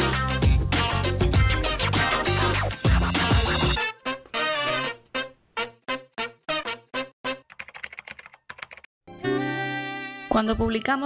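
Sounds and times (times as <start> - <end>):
keyboard typing clicks: 7.5 - 8.9.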